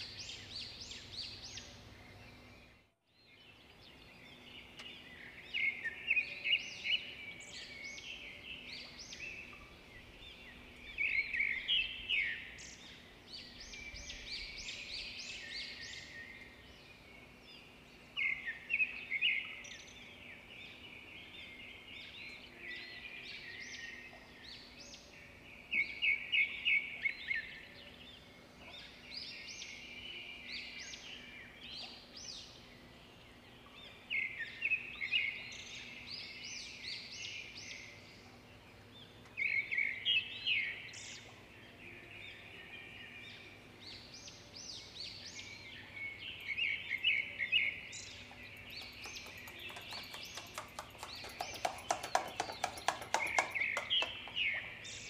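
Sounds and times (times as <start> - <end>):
birds chirping and chattering: 23.4 - 55.0.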